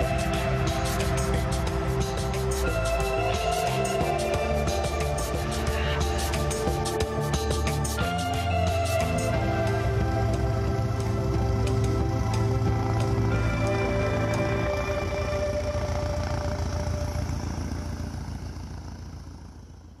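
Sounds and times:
instrumental soundtrack music: 0:00.0 - 0:17.2.

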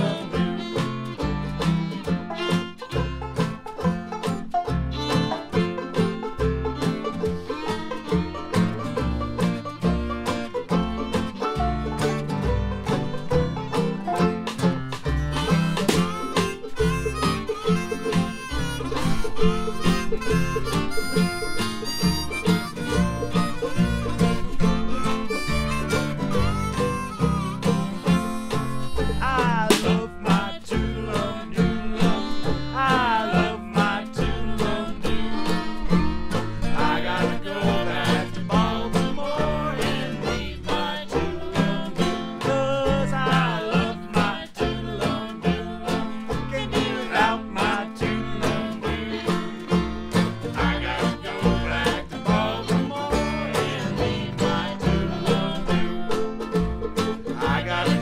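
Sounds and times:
banjo: 0:00.0 - 0:58.0
fiddle: 0:00.0 - 0:58.0
harmonica: 0:00.0 - 0:58.0
jug band music: 0:00.0 - 0:58.0
drum beaten with sticks: 0:13.3 - 0:30.6.

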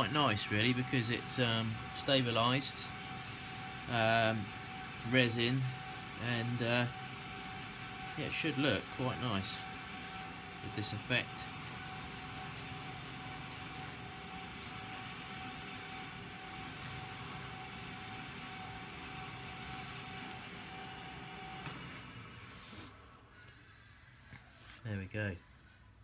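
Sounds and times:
lathe motor switching off: 0:00.0 - 0:24.3
wood lathe whining: 0:00.0 - 0:24.8.

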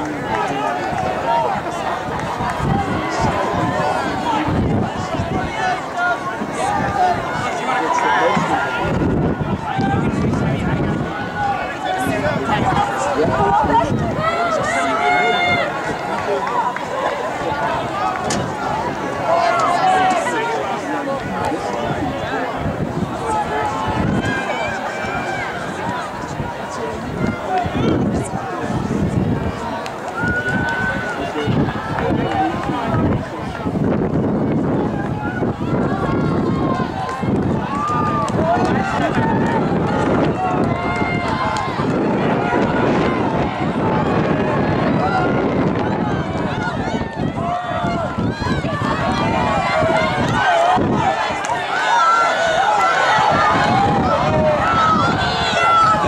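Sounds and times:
overlapping chatter of people: 0:00.0 - 0:56.0
spectators shouting and cheering: 0:00.0 - 0:56.0.

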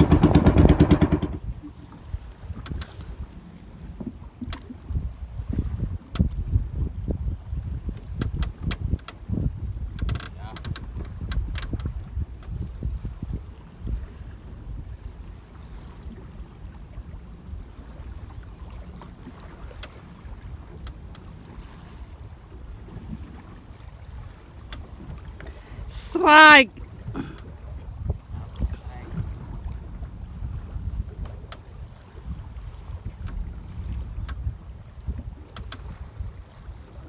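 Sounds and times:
sharp knocks: 0:00.0 - 0:01.4
water slapping boat hull: 0:00.0 - 0:37.0
wind buffeting microphone: 0:00.0 - 0:37.0.

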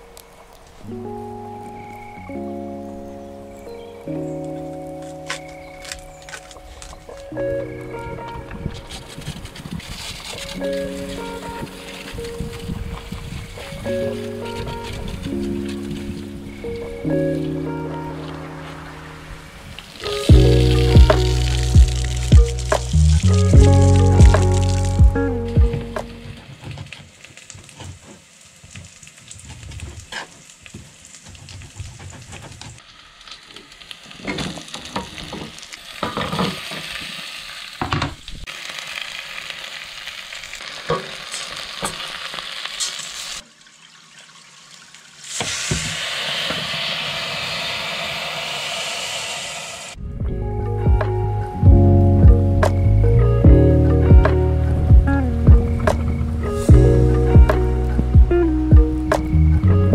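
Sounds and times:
background music: 0:00.0 - 0:09.4, 0:10.4 - 0:26.4, 0:50.0 - 0:59.9
steady hiss: 0:00.0 - 0:43.6, 0:44.7 - 0:50.2
food sizzling in a pot: 0:08.9 - 0:25.0, 0:32.7 - 0:50.0.

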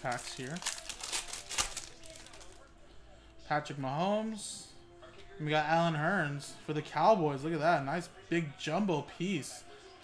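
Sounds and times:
foil wrapper tearing and crinkling: 0:00.0 - 0:02.6.

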